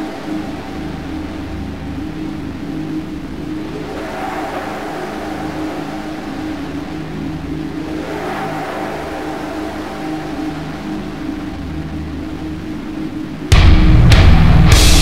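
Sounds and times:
distorted electric guitar riffs: 0:13.5 - 0:15.0.

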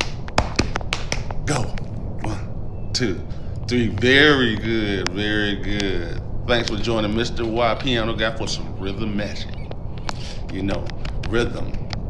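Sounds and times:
finger snaps and slaps: 0:00.0 - 0:01.9
person speaking: 0:01.4 - 0:12.0.

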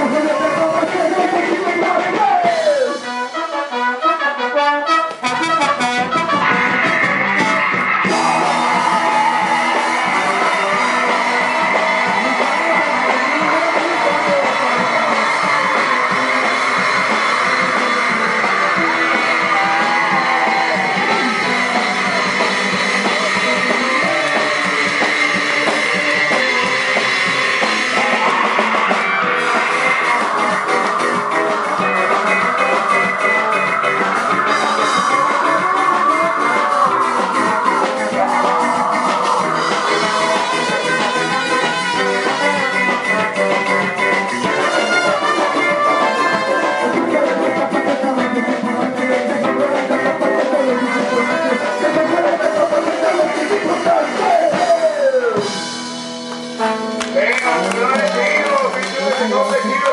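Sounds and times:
punk rock band playing live: 0:00.0 - 0:59.9.

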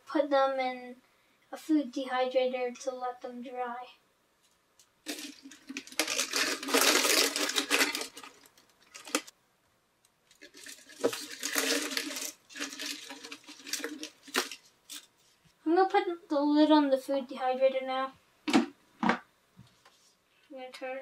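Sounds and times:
plastic pieces rattling on tray: 0:05.1 - 0:09.3, 0:10.3 - 0:15.1.

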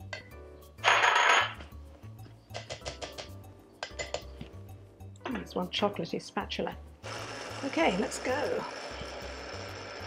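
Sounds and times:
soft background music: 0:00.0 - 0:10.0.

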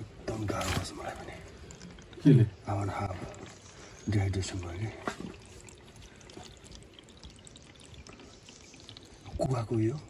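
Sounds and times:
small water drips: 0:00.0 - 0:10.0
water trickling into plastic bottle: 0:00.0 - 0:10.0.

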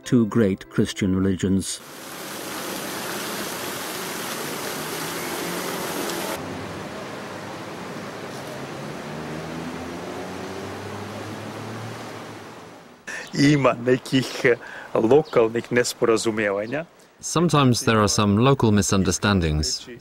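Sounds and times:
fountain water splashing: 0:01.8 - 0:12.5.

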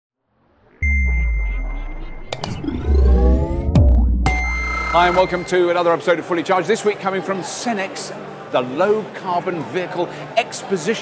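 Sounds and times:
rising sweeps: 0:00.4 - 0:05.8
deep bass hit: 0:00.8 - 0:05.5
high electronic ping: 0:00.8 - 0:05.8.

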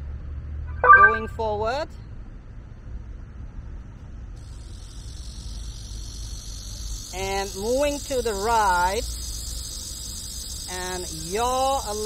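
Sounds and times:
insects chirring: 0:04.4 - 0:12.0.

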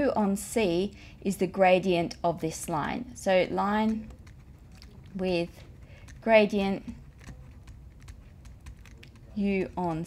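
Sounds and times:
low steady hum: 0:00.0 - 0:10.0
stylus tapping on tablet: 0:03.6 - 0:10.0.

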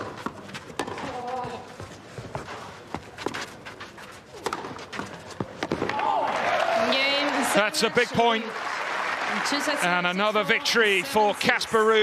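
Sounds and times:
tennis ball struck by rackets: 0:00.0 - 0:01.6, 0:04.4 - 0:06.0.

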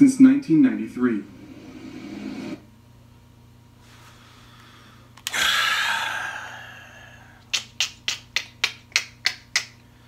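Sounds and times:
breathy exhale: 0:03.9 - 0:07.4
sharp rhythmic clicks: 0:07.5 - 0:09.8.

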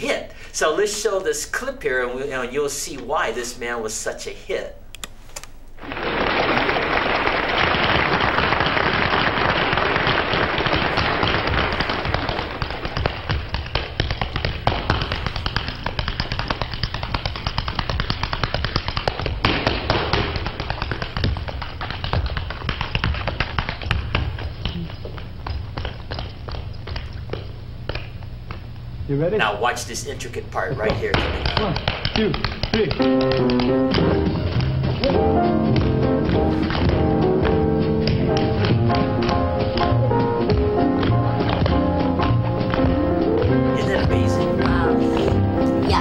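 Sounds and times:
tap shoes tapping on stage: 0:05.8 - 0:28.9, 0:29.6 - 0:46.0.

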